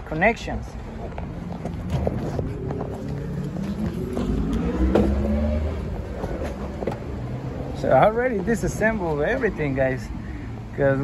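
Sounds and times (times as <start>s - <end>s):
engine accelerating: 1.6s - 7.9s.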